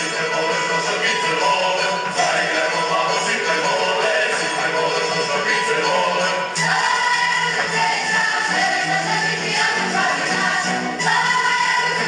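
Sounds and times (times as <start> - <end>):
group singing in chorus: 0.0 - 12.0.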